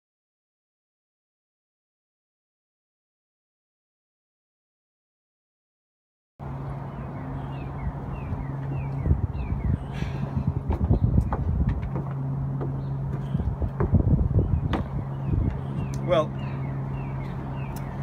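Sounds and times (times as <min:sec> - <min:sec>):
low mechanical hum: 0:06.4 - 0:18.0
wind rumble on microphone: 0:06.5 - 0:18.0
knocks: 0:10.7 - 0:14.1, 0:14.7 - 0:15.0.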